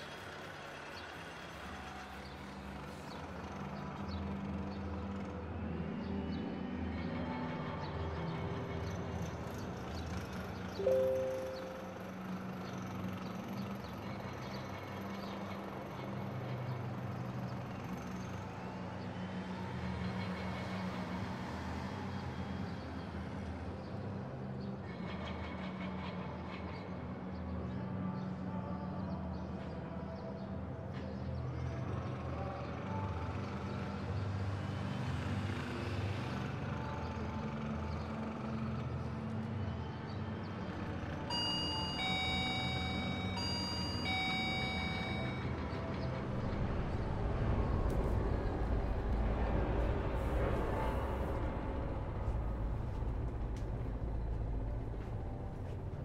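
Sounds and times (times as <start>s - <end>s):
high electronic beeping tones: 41.3s - 45.4s
low rumble: 46.4s - 56.0s.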